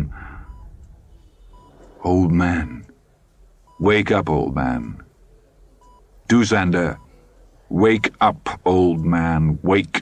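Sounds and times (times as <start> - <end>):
heart monitor beeping: 0.0 - 2.0, 3.6 - 3.9, 5.8 - 6.0.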